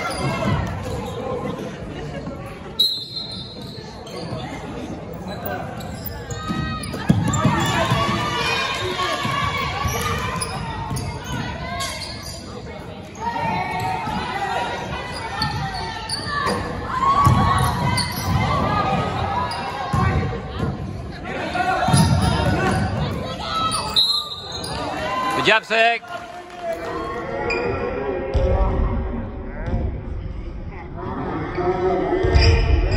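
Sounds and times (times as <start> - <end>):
voices in echoing gym: 0.0 - 32.9.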